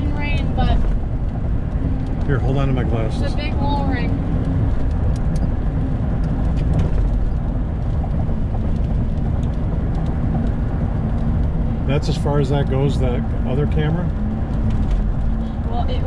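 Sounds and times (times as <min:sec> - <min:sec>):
car cabin road noise: 0:00.0 - 0:16.0.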